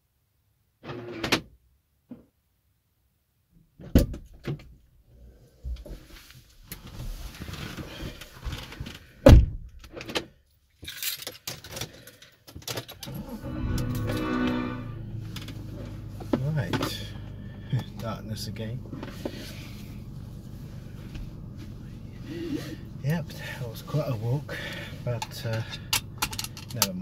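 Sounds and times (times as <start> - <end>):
rustling: 5.8 - 9.2
car door opening: 13.0 - 17.3
car door shutting: 13.0 - 17.9.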